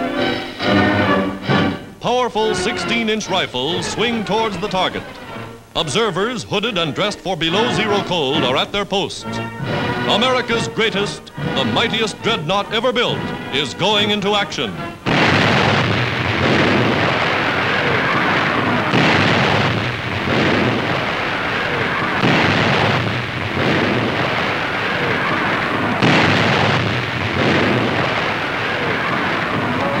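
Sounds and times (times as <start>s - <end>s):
heavy gun booms with rumble: 15.1s - 17.9s, 18.6s - 21.4s, 22.2s - 24.7s, 26.0s - 28.4s.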